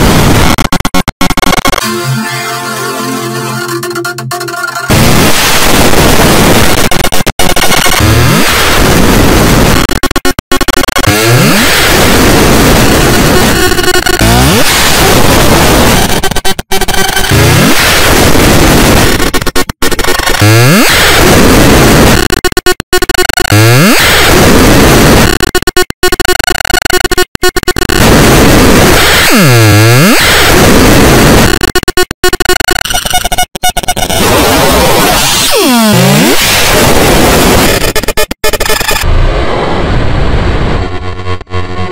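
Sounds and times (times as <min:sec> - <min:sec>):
harsh distorted noise: 0:00.0 - 0:41.9
buzzing engine-like noise: 0:07.6 - 0:41.9.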